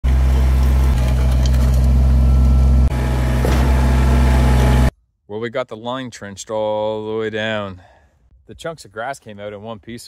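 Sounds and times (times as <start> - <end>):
backhoe digging: 0.0 - 4.9
diesel engine running: 0.0 - 4.9.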